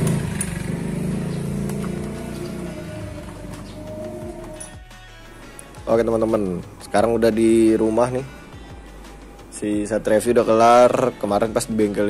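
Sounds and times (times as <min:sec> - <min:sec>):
motorcycle engine idling: 0:00.0 - 0:04.6.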